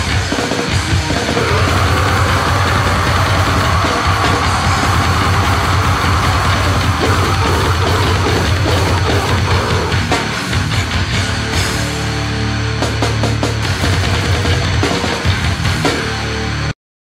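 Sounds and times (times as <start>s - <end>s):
death metal band playing: 0.0s - 16.7s.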